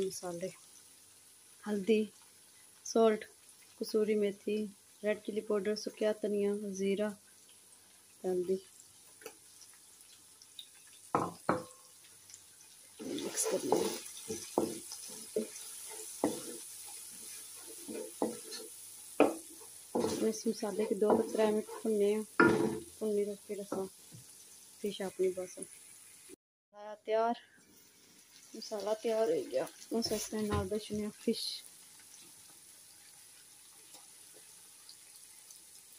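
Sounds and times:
light sizzle: 0:00.0 - 0:26.4, 0:27.0 - 0:35.9
spatula scraping a wok: 0:13.0 - 0:22.9.

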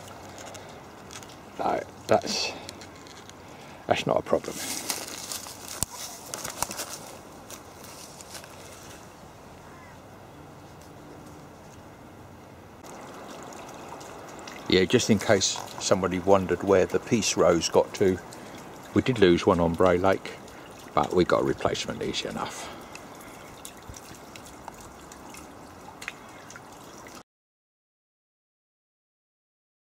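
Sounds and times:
small water splashes: 0:00.0 - 0:03.8, 0:12.8 - 0:27.2
low steady hiss: 0:00.0 - 0:27.2
faint bird call: 0:09.6 - 0:10.0.

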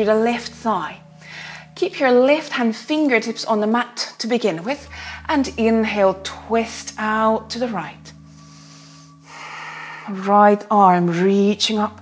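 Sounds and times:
woman breathing: 0:01.1 - 0:01.8, 0:04.8 - 0:05.3, 0:08.1 - 0:10.2.

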